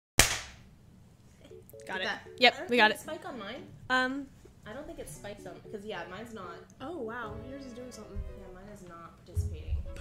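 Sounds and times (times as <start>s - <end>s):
sharp hand clap: 0.2s - 0.6s.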